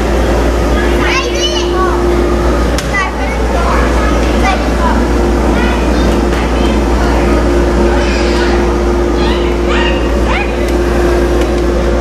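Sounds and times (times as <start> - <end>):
blower humming: 0.0 - 12.0
children calling: 0.2 - 11.8.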